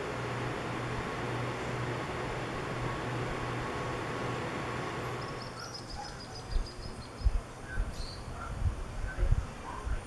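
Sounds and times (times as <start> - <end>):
wind buffeting microphone: 6.5 - 10.0.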